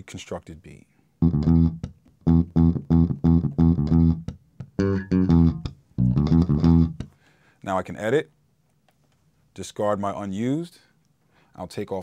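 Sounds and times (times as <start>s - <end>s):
clipped low bass notes: 1.2s - 7.1s.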